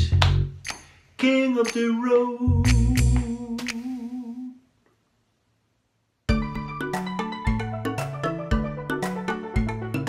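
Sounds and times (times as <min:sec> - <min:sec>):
man singing a held note: 0:01.2 - 0:04.7.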